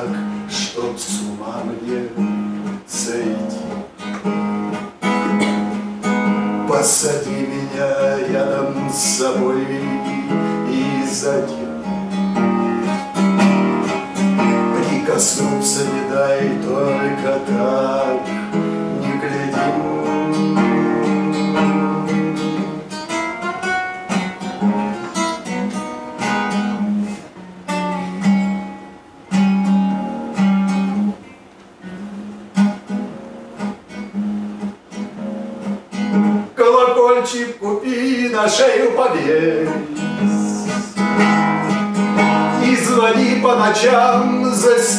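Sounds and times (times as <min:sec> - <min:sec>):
man singing: 0:00.0 - 0:03.9, 0:06.3 - 0:12.2, 0:13.9 - 0:23.0, 0:36.6 - 0:44.9
acoustic guitar strummed and picked: 0:00.0 - 0:44.9.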